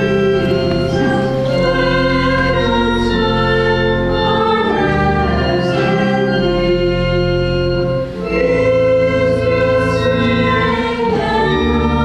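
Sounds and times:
church organ chords: 0.0 - 12.0
voices singing a hymn: 0.0 - 12.0.

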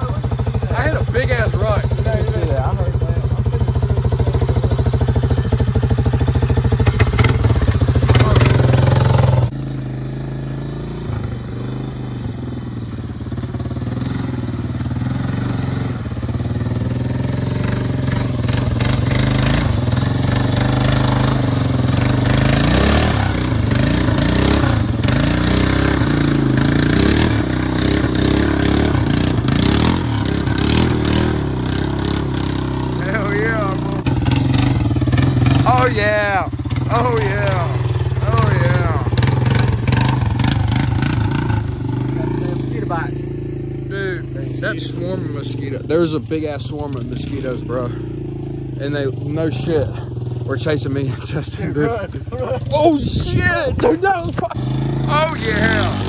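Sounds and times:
four-wheeler engine revving: 0.0 - 56.0.

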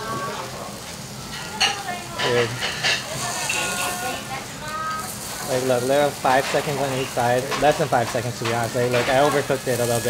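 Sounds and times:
meat sizzling on a grill: 0.0 - 10.0.

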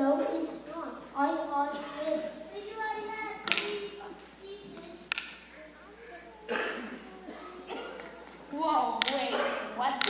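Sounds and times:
faint talking: 0.0 - 9.8
person coughing: 6.5 - 8.0, 9.3 - 9.8.

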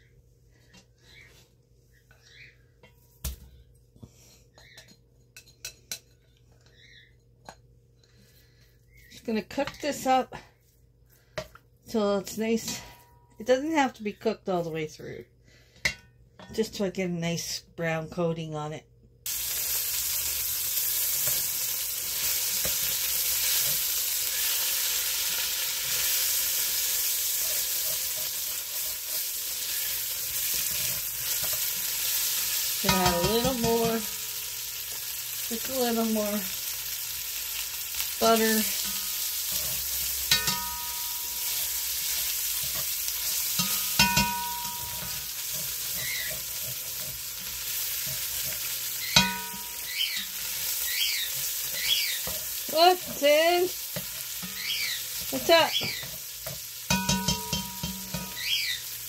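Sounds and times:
meat sizzling in oil: 19.3 - 59.0
spatula stirring in a pot: 19.5 - 35.1, 38.0 - 59.0.

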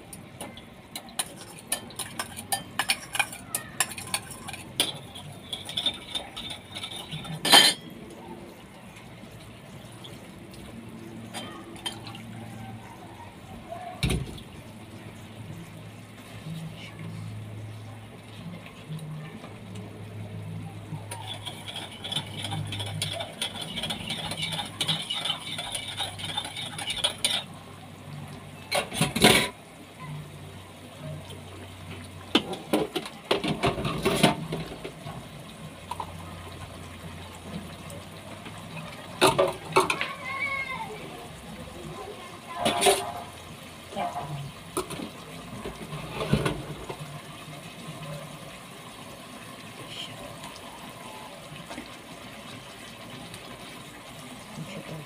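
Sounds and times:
metal tongs clinking on pot: 0.4 - 7.9, 21.0 - 27.6.

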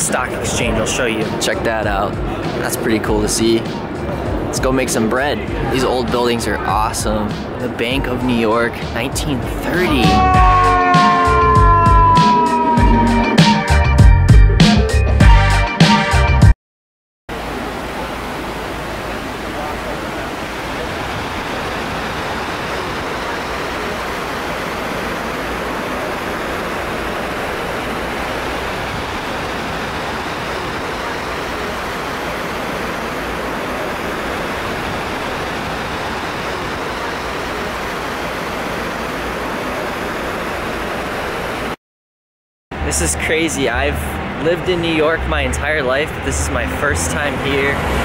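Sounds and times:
crowd murmuring: 9.5 - 13.6
rush of falling water: 17.3 - 41.8.

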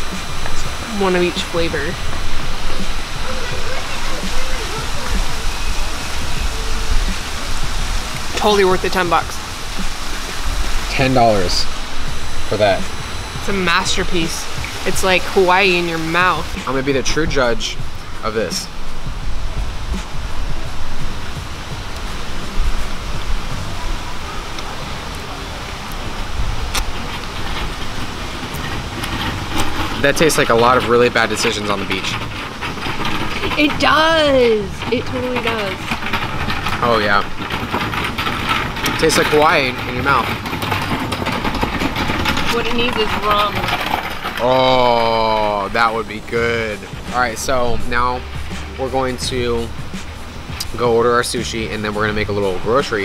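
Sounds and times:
faint voices: 0.0 - 53.0
low rumble: 0.0 - 53.0
steady rushing noise: 0.0 - 53.0.

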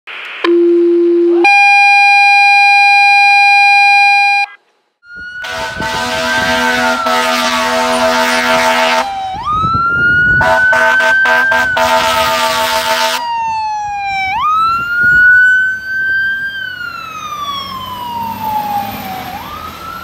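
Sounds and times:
fire engine siren wailing: 5.0 - 20.0.

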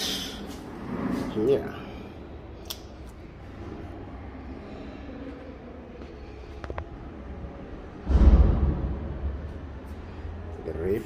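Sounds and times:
loud low thump: 8.0 - 9.6.

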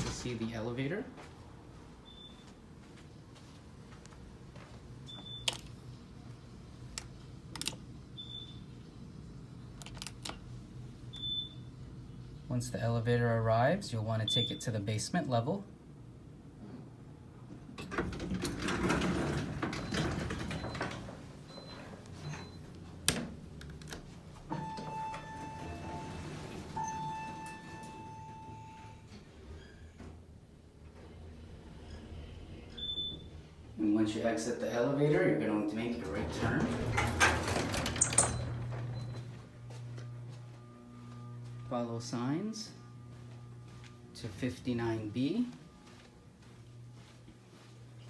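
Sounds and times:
low electrical hum: 0.0 - 48.0
elevator doors sliding open: 17.6 - 23.4, 24.4 - 34.5, 35.1 - 39.7.

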